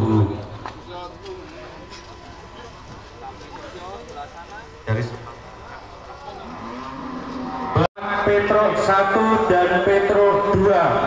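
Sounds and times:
crowd chatter: 0.0s - 11.0s
cow mooing: 6.3s - 7.9s.

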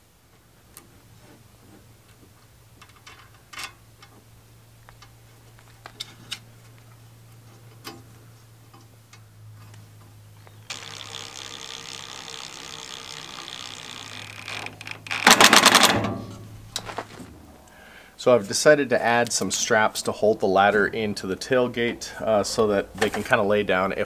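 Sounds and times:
cordless driver motor: 10.6s - 15.4s
rapid clatter of driver: 12.9s - 16.9s.

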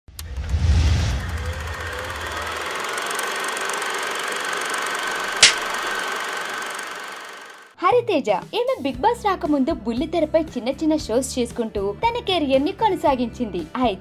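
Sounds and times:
low rumbling swell: 0.2s - 3.1s
sharp click: 5.4s - 5.8s.

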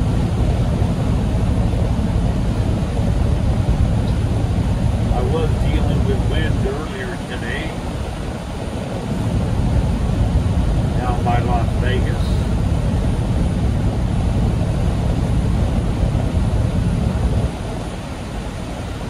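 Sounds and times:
road noise: 0.0s - 19.0s
truck engine drone: 0.0s - 19.0s.

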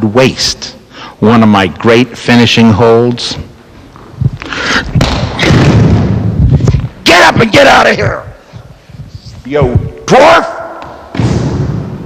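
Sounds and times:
microphone bumps: 4.0s - 7.0s.

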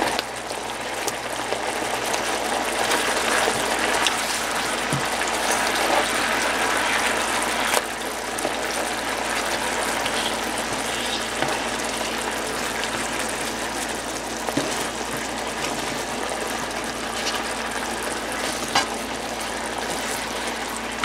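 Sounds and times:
sauce bubbling and sizzling in pan: 0.0s - 21.0s.

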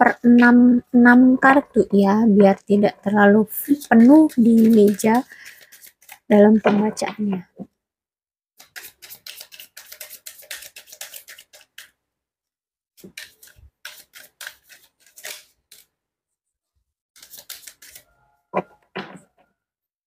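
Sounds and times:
cards being shuffled: 3.8s - 7.0s, 8.6s - 12.0s, 13.0s - 15.9s, 17.2s - 18.0s.

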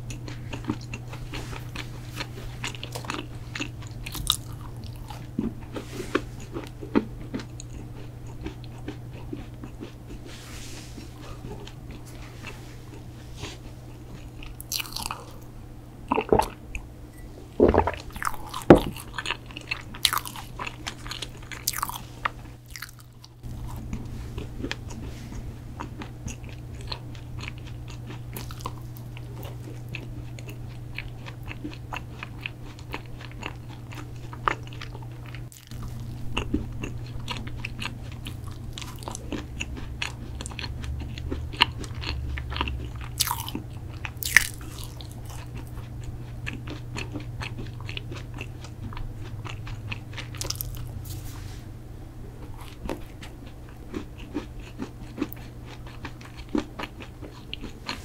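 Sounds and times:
chewing crisp cookies: 0.0s - 15.5s, 17.6s - 51.4s, 52.2s - 58.0s
low steady hum: 0.0s - 58.0s.

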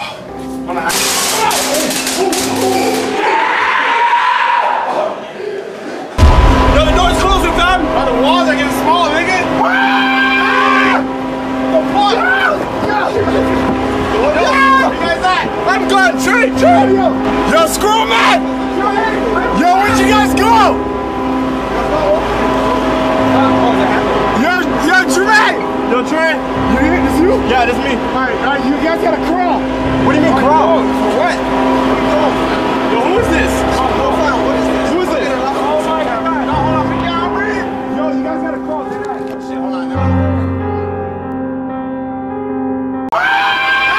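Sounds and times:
rumble: 6.2s - 9.1s
low droning hum: 6.2s - 37.9s.

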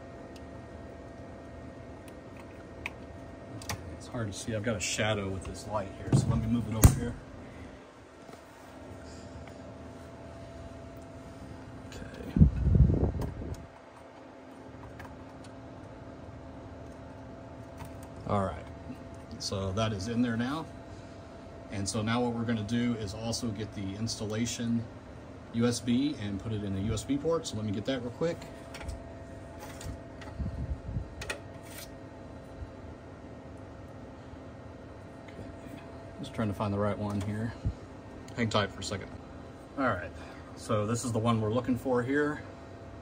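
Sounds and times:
steady low hum: 0.0s - 43.0s
handling thumps: 6.0s - 7.2s.

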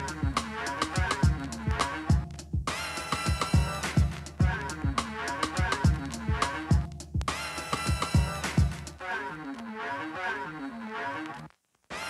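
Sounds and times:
music from a vinyl record: 0.0s - 12.0s.

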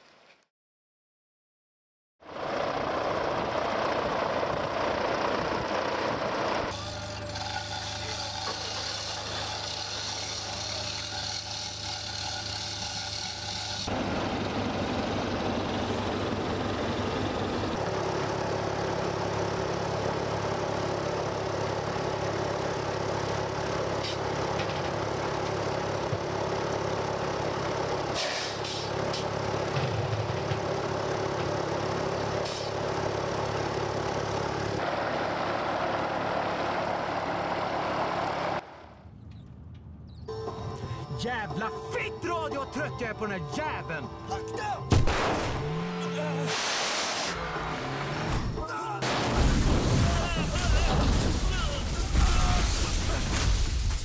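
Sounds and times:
heavy engine running: 2.2s - 54.0s.

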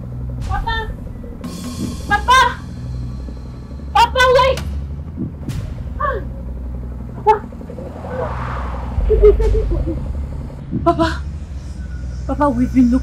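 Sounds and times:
vehicle engine rumble: 6.4s - 11.8s
rush of passing noise: 7.6s - 10.7s.

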